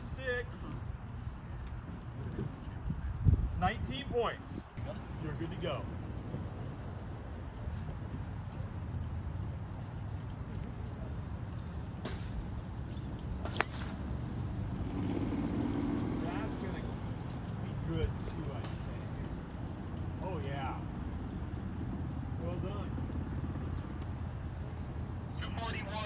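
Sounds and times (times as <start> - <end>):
low outdoor rumble: 0.0 - 26.0
golf club striking ball: 13.4 - 14.1.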